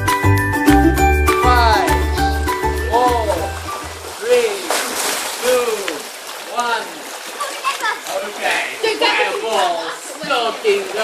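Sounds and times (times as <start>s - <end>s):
pool water splashing: 0.0s - 11.0s
high voices calling out: 1.4s - 3.6s.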